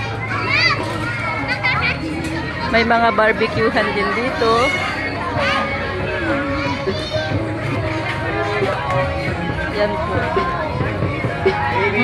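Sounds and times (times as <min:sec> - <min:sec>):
children shrieking at play: 0:00.0 - 0:02.1, 0:04.1 - 0:07.4
crowd chatter: 0:00.0 - 0:12.0.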